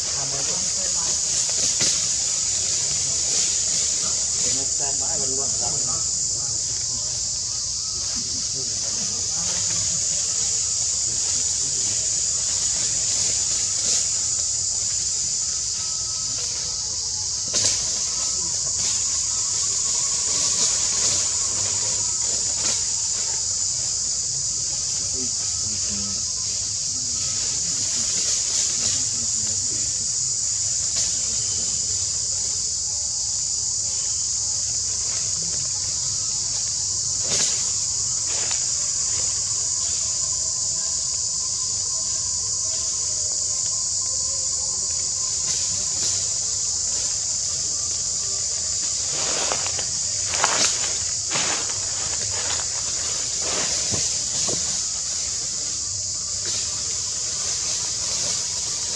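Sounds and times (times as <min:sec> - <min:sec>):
high-pitched insect drone: 0:00.0 - 0:58.9.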